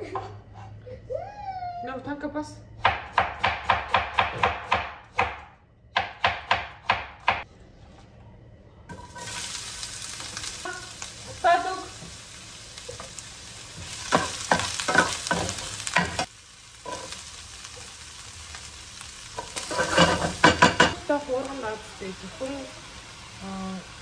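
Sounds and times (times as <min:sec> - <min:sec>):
onion sizzling in frying pan: 0:08.9 - 0:24.0
spatula scraping and clacking pan: 0:13.8 - 0:17.2, 0:19.4 - 0:21.0.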